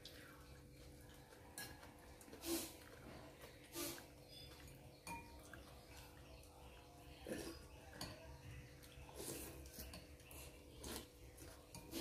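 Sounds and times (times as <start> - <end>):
chopsticks clinking on bowls: 0.6 - 12.0
person eating and slurping: 2.3 - 3.0, 9.1 - 12.0.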